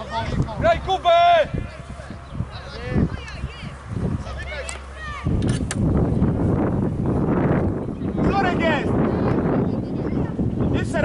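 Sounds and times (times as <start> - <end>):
wind rumbling on microphone: 0.0 - 11.0
sharp clicks: 5.4 - 5.9.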